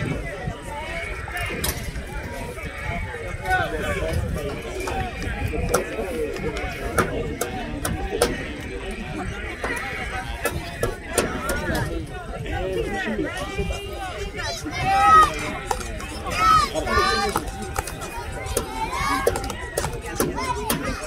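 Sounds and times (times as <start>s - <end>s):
spectators talking and calling: 0.0s - 21.0s.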